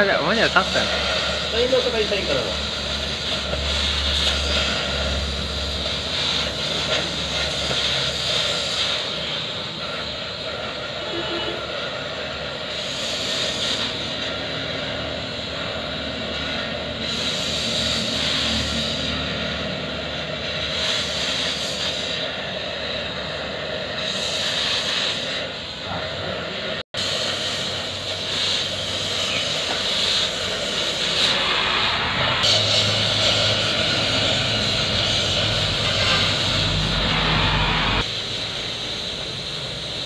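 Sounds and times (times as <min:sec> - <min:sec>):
cutting torch hissing: 0:00.0 - 0:40.0.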